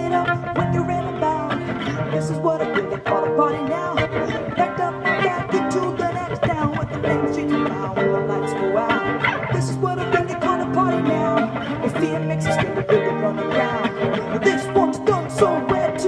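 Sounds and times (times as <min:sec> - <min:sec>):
acoustic guitar strumming: 0:00.0 - 0:16.0.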